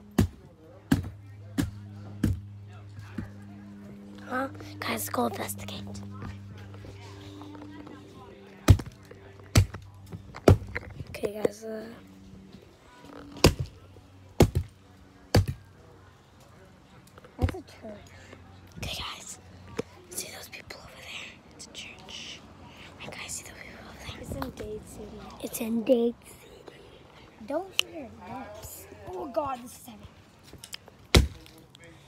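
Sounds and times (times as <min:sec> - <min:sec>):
steady low hum: 0:00.0 - 0:32.0
sharp thumps: 0:00.1 - 0:03.5, 0:08.6 - 0:11.5.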